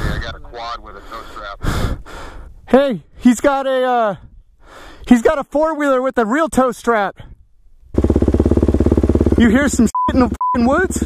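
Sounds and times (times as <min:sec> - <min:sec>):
dirt bike engine running: 0:07.9 - 0:11.0.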